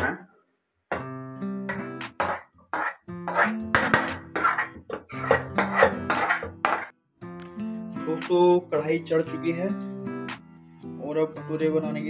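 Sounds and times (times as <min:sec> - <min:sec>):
metal spoon scraping metal pot: 0:01.7 - 0:06.9.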